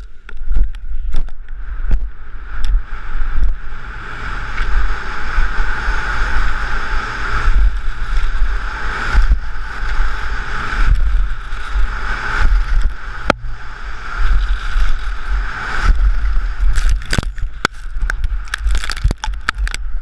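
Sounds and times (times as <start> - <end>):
skis carving on hard snow: 0.0 - 20.0
wind buffeting camera microphone: 0.0 - 20.0.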